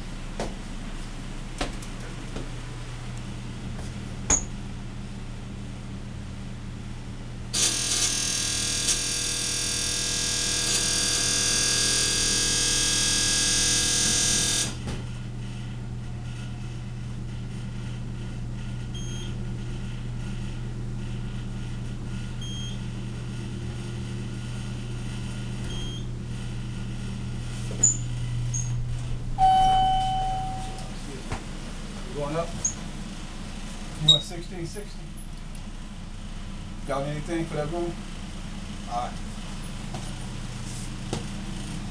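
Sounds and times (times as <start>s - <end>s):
elevator door buzzer: 7.5s - 14.9s, 18.9s - 19.4s, 22.3s - 23.1s, 24.2s - 31.0s, 32.6s - 33.0s
low steady hum: 14.9s - 41.9s
chime tone: 29.4s - 31.0s
faint short beeps: 29.4s - 31.0s.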